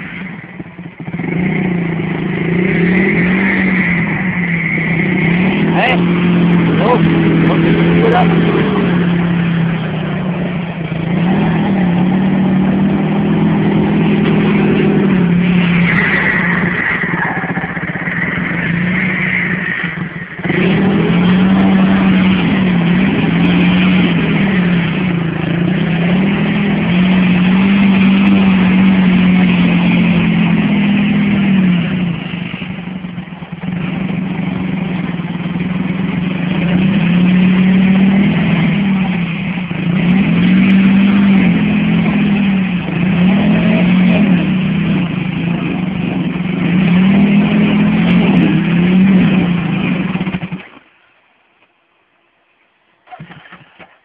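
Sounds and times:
quad engine revving: 0.0 - 50.9, 53.0 - 54.0.

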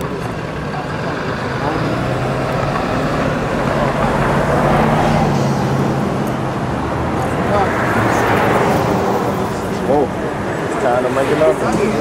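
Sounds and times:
indistinct voices: 0.0 - 12.0
outdoor background noise: 0.0 - 12.0.

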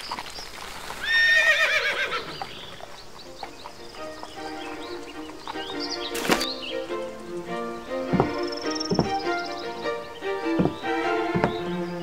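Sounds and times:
horse whinnying: 1.0 - 2.8
orchestral music: 3.5 - 12.0.

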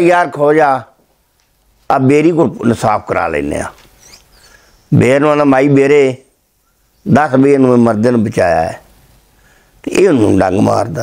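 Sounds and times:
faint high squeaks: 3.8 - 4.9.

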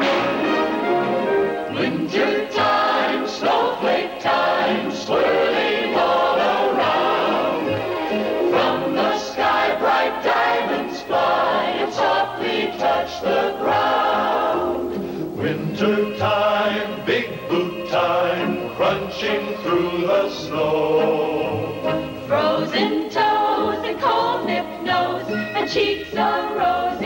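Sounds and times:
choir singing: 0.0 - 27.0
musical accompaniment: 0.0 - 27.0.

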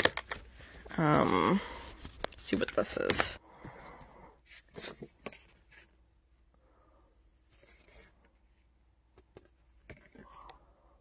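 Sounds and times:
paper and card packaging rustling: 0.0 - 6.0.

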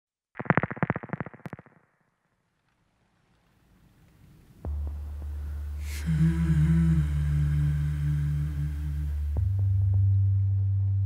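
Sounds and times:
deep synth bass drone: 4.6 - 11.0
person humming: 5.8 - 10.0.

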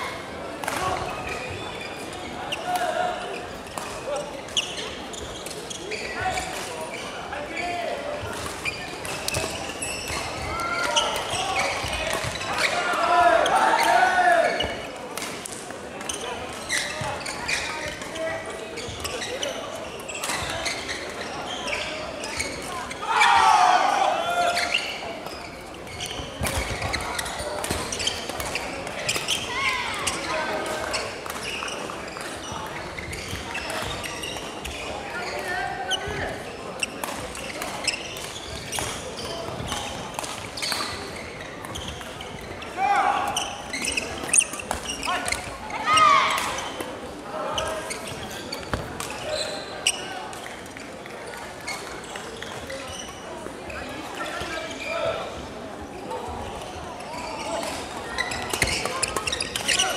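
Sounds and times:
unintelligible chatter: 0.0 - 59.9
shoes on wooden court: 0.6 - 15.3, 15.9 - 55.2, 56.1 - 59.9
players shouting: 12.5 - 14.7, 23.0 - 24.8.

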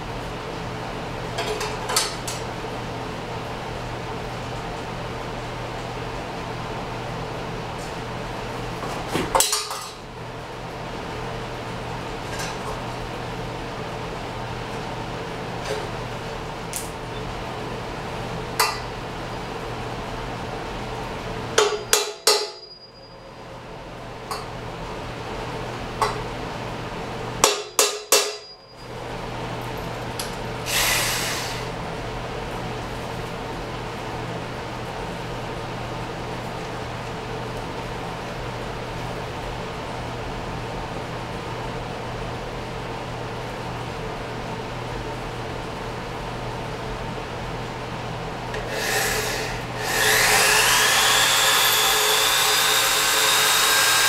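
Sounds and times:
workshop hum: 0.0 - 54.0
hammer strikes on steel frame: 21.6 - 22.7, 27.4 - 28.6.

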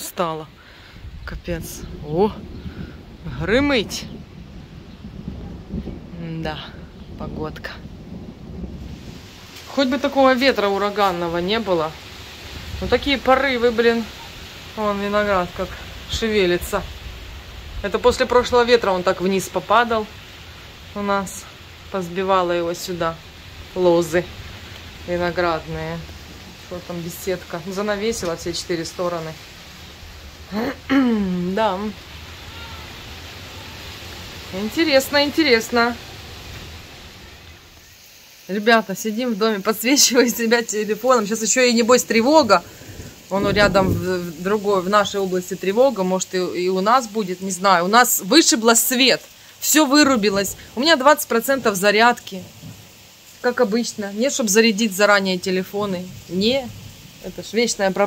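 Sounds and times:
thunder rumbling: 0.0 - 58.0
wind buffeting microphone: 0.9 - 37.8, 40.9 - 45.4.

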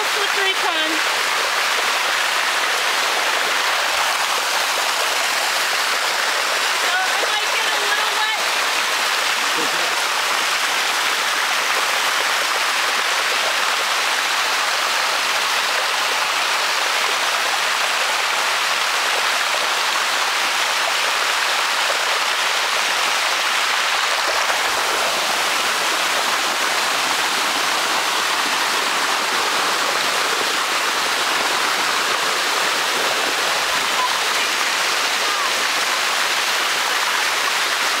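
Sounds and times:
water rushing down a waterfall: 0.0 - 38.0.

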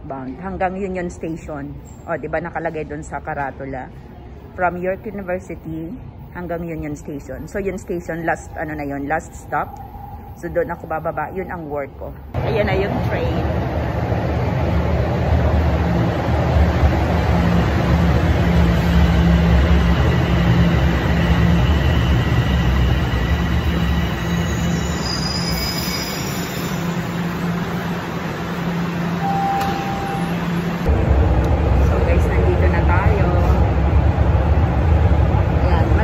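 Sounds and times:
subway train rumbling: 0.0 - 36.0
train brakes squealing: 21.1 - 27.3
short tone: 29.2 - 30.8.

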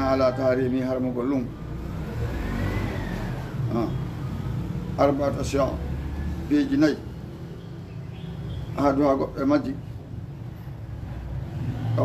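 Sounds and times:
man talking: 0.0 - 1.6, 3.6 - 4.1, 5.0 - 5.9, 6.5 - 7.2, 8.8 - 10.0.

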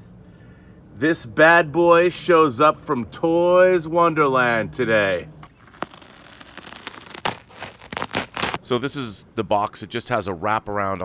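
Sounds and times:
bubble wrap crackling: 5.6 - 8.7
tape slit with blade: 5.6 - 8.7.

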